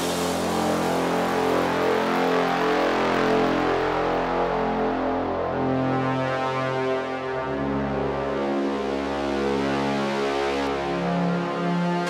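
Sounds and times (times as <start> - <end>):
wash of noise: 0.0 - 2.6.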